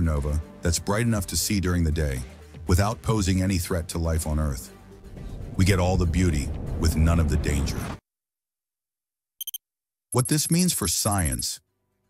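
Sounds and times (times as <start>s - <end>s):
short high electronic beeps: 9.4s - 9.6s.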